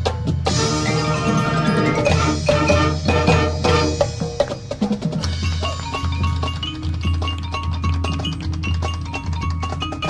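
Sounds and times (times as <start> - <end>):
drum and mallet percussion strikes: 0.0 - 10.0
marching band held chords: 0.0 - 10.0.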